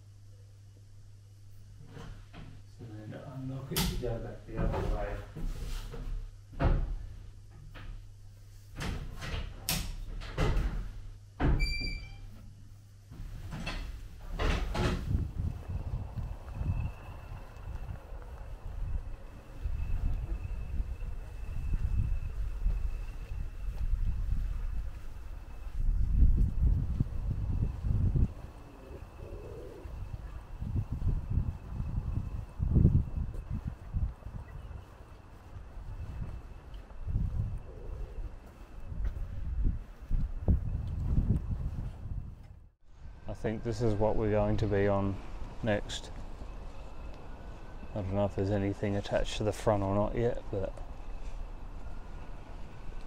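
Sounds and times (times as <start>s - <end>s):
faint high whine: 11.4s - 53.0s
low rumbling: 14.1s - 48.9s.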